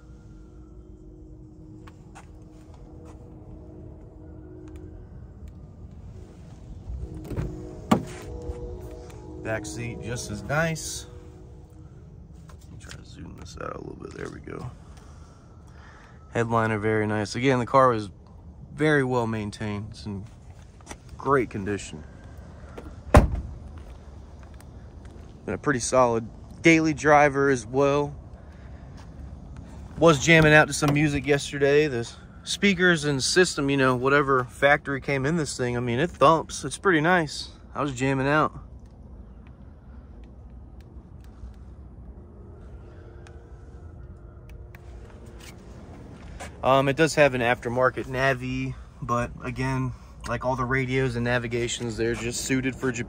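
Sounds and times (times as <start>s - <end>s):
faint steady hum: 0.0s - 53.0s
low steady rumble: 0.0s - 53.0s
car door slamming: 7.1s - 8.3s, 23.1s - 23.6s.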